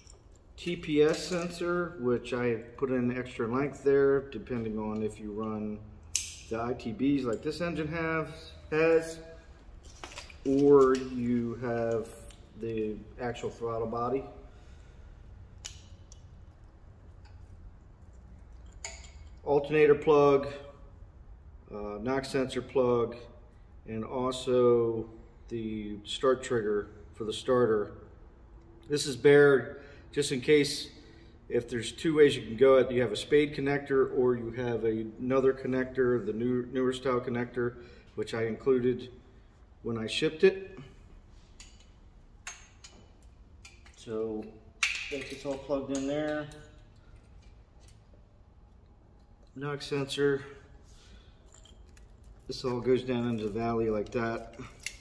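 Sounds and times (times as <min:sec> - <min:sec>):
low steady hum: 0:00.0 - 0:55.0.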